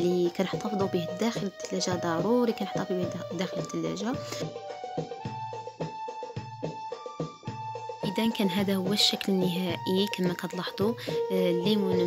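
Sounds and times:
keyboard music: 0:00.6 - 0:12.0.

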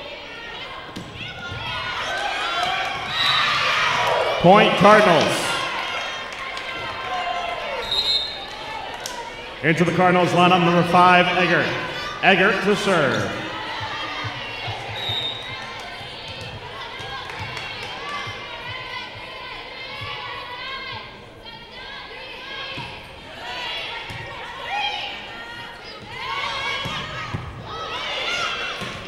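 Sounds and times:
crowd shouting: 0:00.0 - 0:29.0
players calling: 0:01.0 - 0:18.6.

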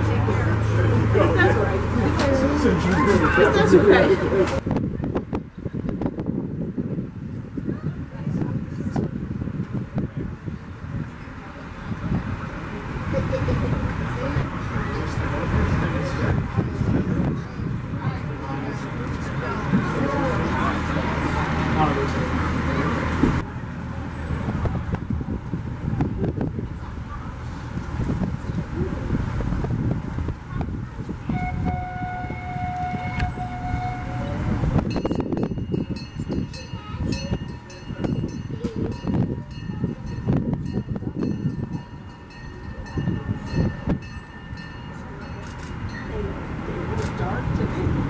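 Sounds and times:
distant voices: 0:00.0 - 0:06.1, 0:07.6 - 0:48.0
wind: 0:00.0 - 0:48.0
steady horn-like tone: 0:31.3 - 0:34.8.

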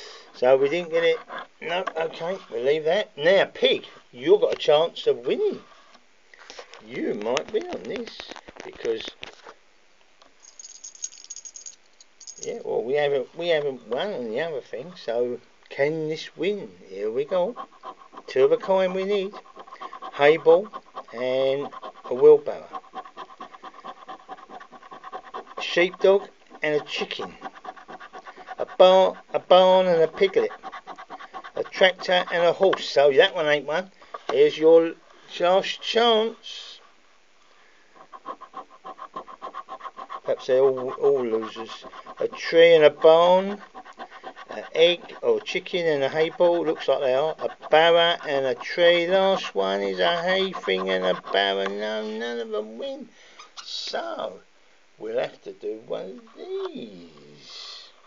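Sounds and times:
scratchcard being scratched: 0:17.0 - 0:33.5, 0:38.0 - 0:52.6.

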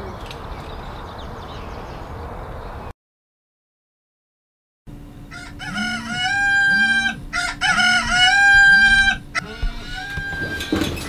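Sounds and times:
rooster crowing alarm: 0:05.3 - 0:11.0.

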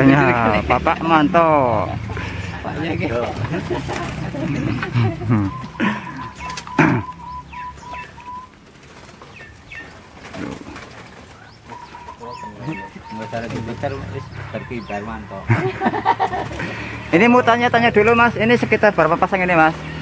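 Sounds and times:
doves cooing: 0:00.0 - 0:20.0
small birds chirping: 0:00.0 - 0:20.0.

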